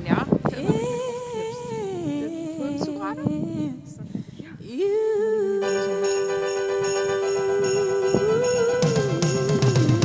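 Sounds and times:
woman singing long sliding note: 0:00.6 - 0:04.0, 0:04.6 - 0:10.0.

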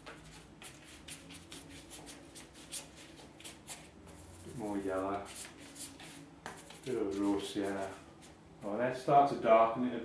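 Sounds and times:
brush swishing paint on paper: 0:00.0 - 0:08.4.

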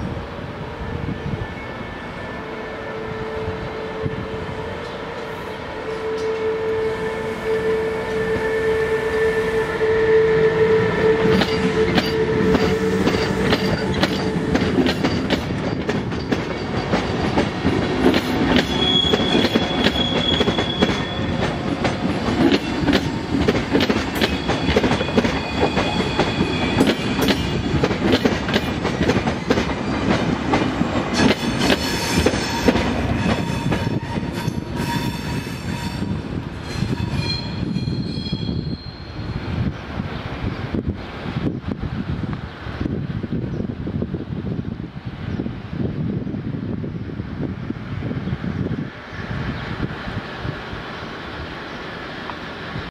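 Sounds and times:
electric locomotive passing: 0:00.0 - 0:52.9
train wheels clattering: 0:11.2 - 0:38.3
wheel squeals: 0:18.4 - 0:21.6, 0:24.2 - 0:27.6, 0:36.7 - 0:39.5.

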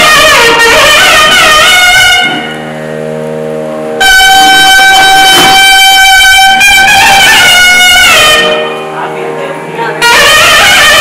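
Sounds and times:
double reed pipe melody: 0:00.0 - 0:09.1, 0:09.8 - 0:11.0
low steady drone: 0:00.0 - 0:11.0.

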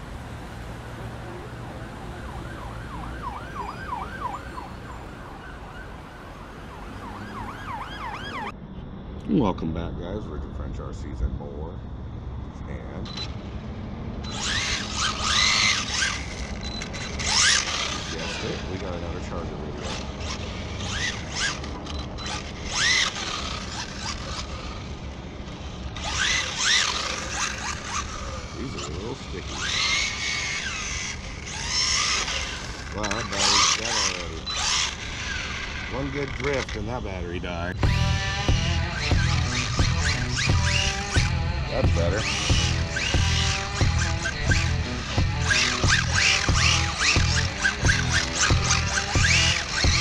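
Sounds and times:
electric motor whining: 0:00.0 - 0:08.5, 0:12.9 - 0:50.0
siren yelping: 0:01.1 - 0:08.6
low steady rumble: 0:08.5 - 0:50.0
steady low rumble: 0:35.9 - 0:50.0.

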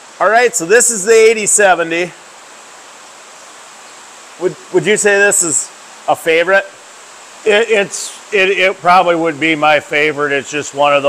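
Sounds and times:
steady background hiss: 0:00.0 - 0:11.0
man's voice: 0:00.2 - 0:02.2, 0:04.4 - 0:06.7, 0:07.5 - 0:11.0.

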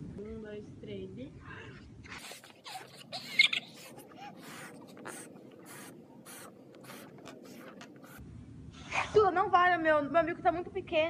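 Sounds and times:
puffs of breath blowing balloons: 0:01.5 - 0:08.2
balloon squeak: 0:02.2 - 0:08.2.

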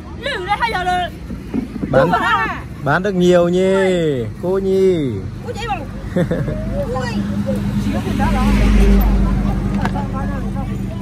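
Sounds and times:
vehicle passing: 0:00.0 - 0:11.0
voices talking: 0:00.0 - 0:11.0.

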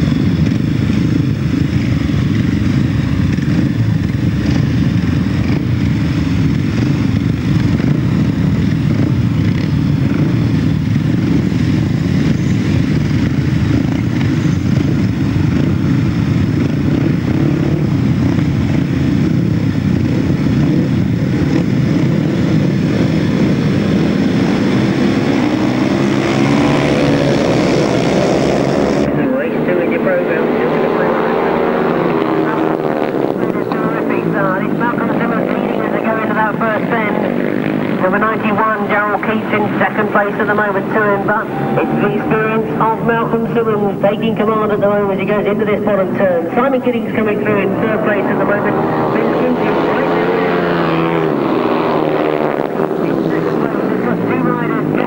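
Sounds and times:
motorcycles accelerating hard: 0:00.0 - 0:55.0
motorcycles idling and revving: 0:00.0 - 0:55.0.

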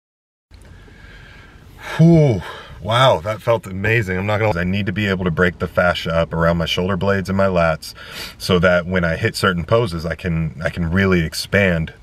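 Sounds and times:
faint background hiss: 0:00.5 - 0:12.0
man's sharp in-breath: 0:00.8 - 0:02.8, 0:08.0 - 0:08.4
man sighing whew: 0:01.0 - 0:02.9.

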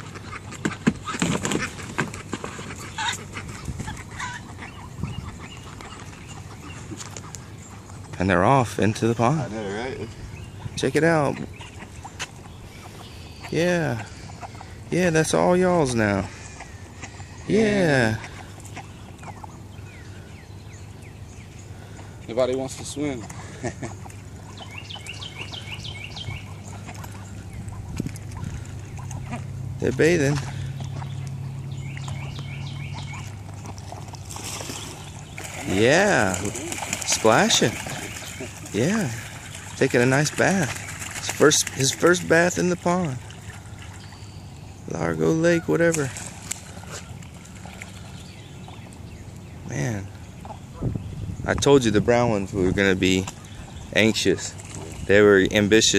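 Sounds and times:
ducklings peeping: 0:00.0 - 0:55.9
low outdoor rumble: 0:00.0 - 0:55.9.

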